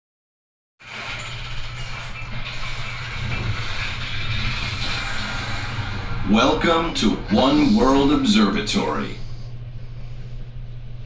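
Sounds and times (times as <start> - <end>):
elevator hum and rushing: 0.8 - 11.0.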